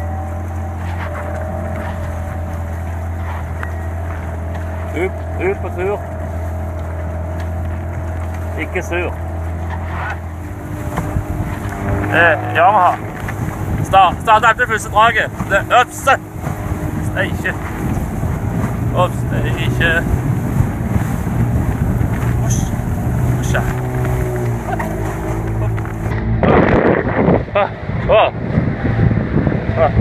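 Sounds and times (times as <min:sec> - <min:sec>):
outboard motor idling: 0:00.0 - 0:27.0
wind buffeting microphone: 0:00.0 - 0:30.0.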